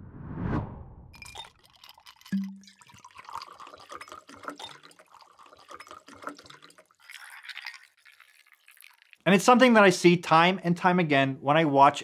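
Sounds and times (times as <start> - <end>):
ice crackling and clinking: 1.2 - 9.3
liquid poured over ice: 1.2 - 9.7.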